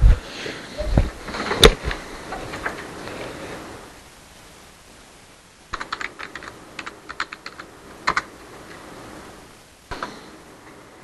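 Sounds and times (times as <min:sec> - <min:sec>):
typing on computer keyboard: 0:05.7 - 0:08.3.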